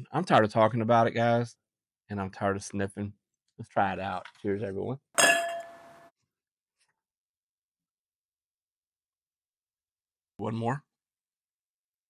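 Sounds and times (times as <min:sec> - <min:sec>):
glass clinking: 0:05.2 - 0:06.1.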